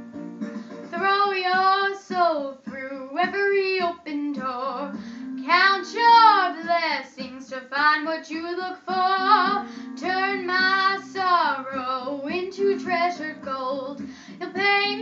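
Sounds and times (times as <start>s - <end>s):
girl singing: 0.9s - 15.0s
guitar accompaniment: 8.6s - 15.0s.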